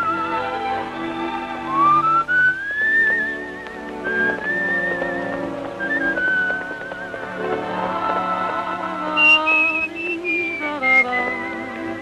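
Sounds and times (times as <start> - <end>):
soft orchestral accompaniment: 0.0 - 12.0
whistled melody with vibrato: 0.0 - 12.0.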